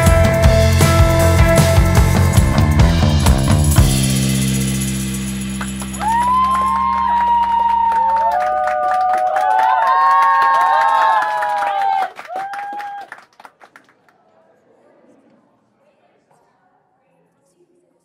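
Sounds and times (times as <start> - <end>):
loud rock music: 0.0 - 6.4
audience applauding: 5.6 - 14.2
audience cheering with whoops: 6.0 - 13.2.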